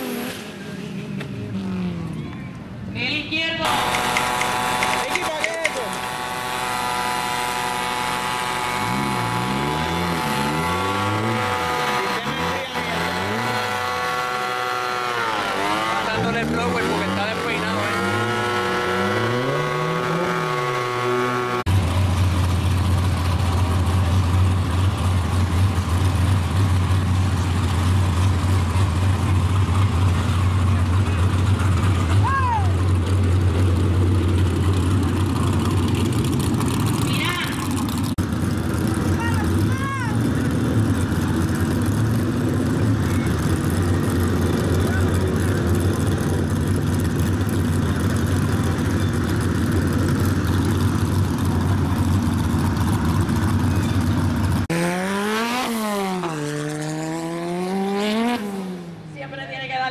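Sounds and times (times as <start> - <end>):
car engine idling: 0.6 - 19.1, 21.6 - 54.7
crowd voices: 26.7 - 54.8.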